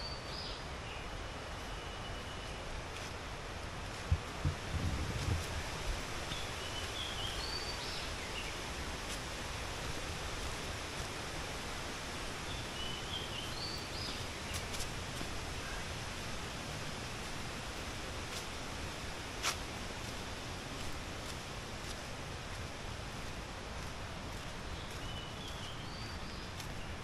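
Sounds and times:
outdoor background noise: 0.0 - 27.0.

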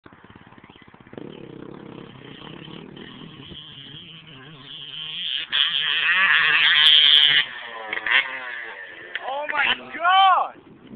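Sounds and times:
motocross bike engine approaching: 0.0 - 10.9.

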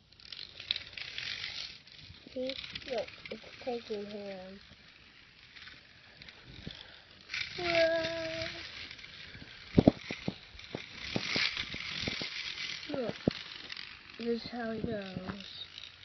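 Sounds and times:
handling noise rubbing: 0.2 - 16.0.

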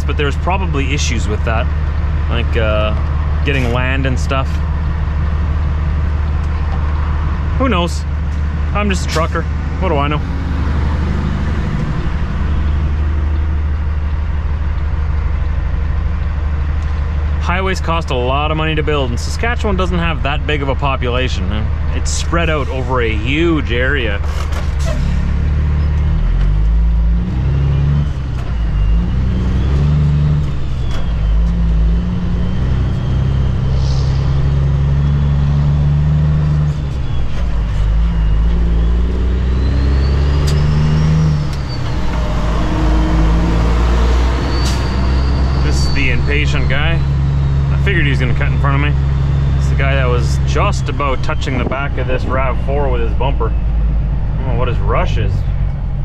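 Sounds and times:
diesel truck engine accelerating: 0.0 - 56.0
faint whine: 30.4 - 35.6.

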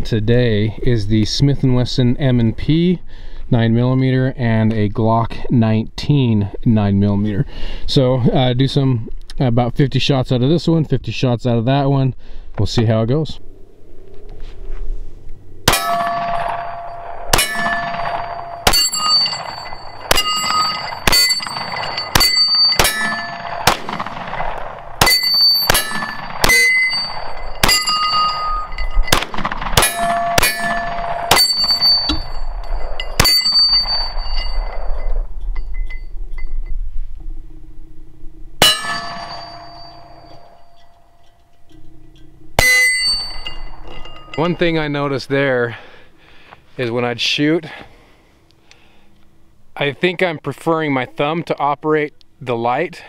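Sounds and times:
pistol shots: 15.6 - 32.3
steel targets ringing: 15.6 - 36.8, 37.5 - 45.7.

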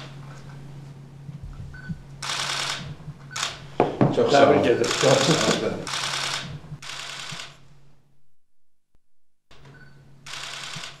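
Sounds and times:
camera shutter bursts: 2.2 - 3.6, 4.8 - 7.6, 10.2 - 11.0.

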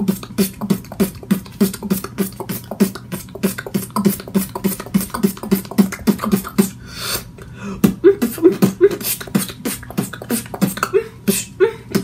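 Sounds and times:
beatboxing: 0.0 - 12.0
low vocal notes: 0.0 - 12.0
vocal hiss: 0.0 - 12.0.

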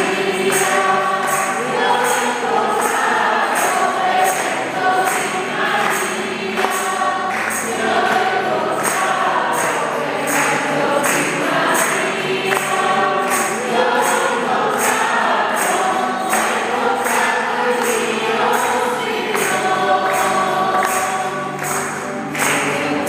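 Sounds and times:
congregation singing a hymn: 0.0 - 23.0.

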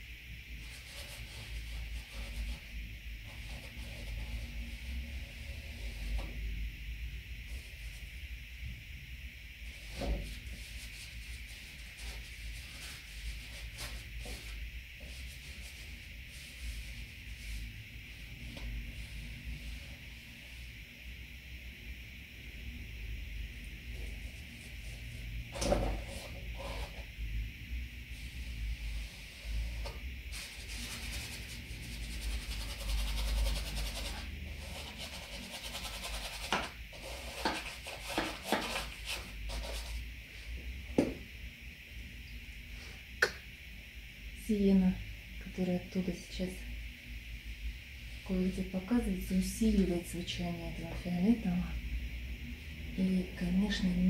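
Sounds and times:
steady hiss: 0.0 - 22.8
paintbrush scraping on canvas: 28.9 - 40.0.

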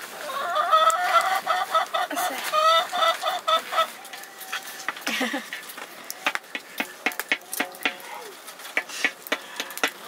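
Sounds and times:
chicken clucking: 0.1 - 6.2.

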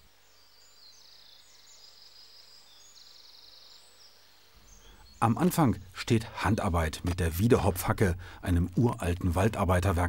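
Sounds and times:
quiet hiss: 0.0 - 10.0.

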